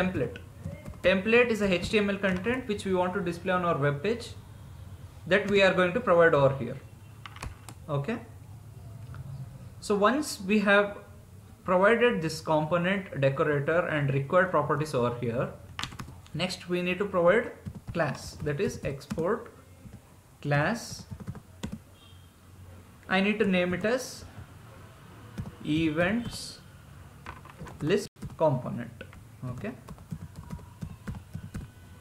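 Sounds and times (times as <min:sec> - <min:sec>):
keyboard typing: 0:00.0 - 0:02.7, 0:05.4 - 0:05.8, 0:07.2 - 0:07.8, 0:15.7 - 0:16.3, 0:17.6 - 0:20.0, 0:21.0 - 0:21.8, 0:25.3 - 0:26.4, 0:27.3 - 0:31.9
computer keyboard key presses: 0:15.8 - 0:16.1, 0:29.8 - 0:31.7.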